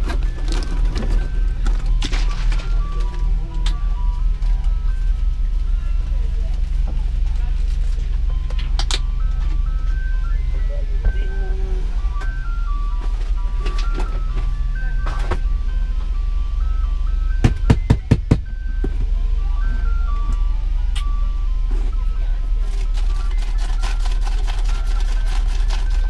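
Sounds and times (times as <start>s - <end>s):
ice cream truck chime tune: 0.0s - 26.0s
steady low hum: 0.0s - 26.0s.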